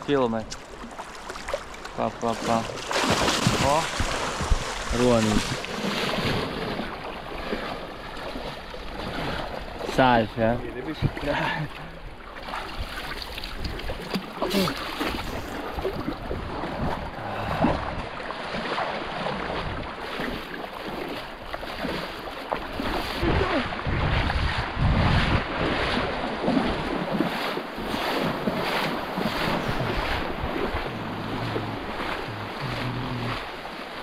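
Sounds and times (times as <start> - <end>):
small waves washing: 0.0 - 34.0
wind on microphone: 3.1 - 7.0, 14.6 - 18.1, 22.8 - 33.6.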